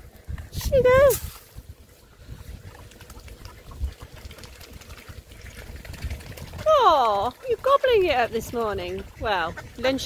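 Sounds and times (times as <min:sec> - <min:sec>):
bills dabbling in water: 0:00.0 - 0:10.0.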